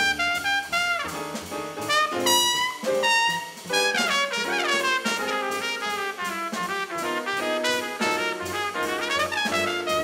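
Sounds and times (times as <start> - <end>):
drums: 0.0 - 10.0
jazz trumpet soloing: 0.0 - 10.0
upright bass: 0.0 - 10.0.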